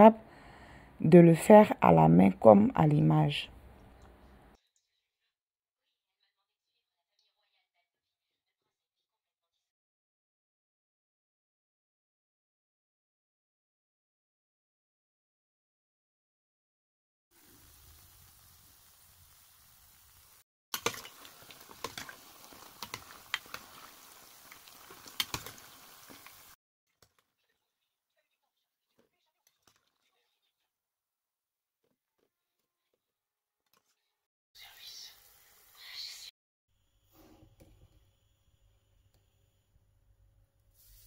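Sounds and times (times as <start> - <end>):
dough frying in hot oil: 17.4 - 26.6.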